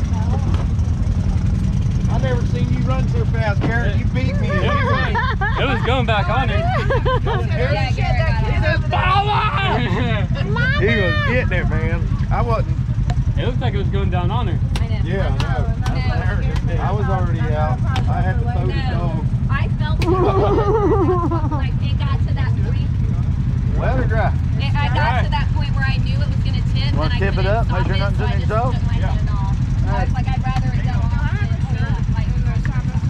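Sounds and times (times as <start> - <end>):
engine idling: 0.0 - 33.0
people talking: 0.0 - 33.0.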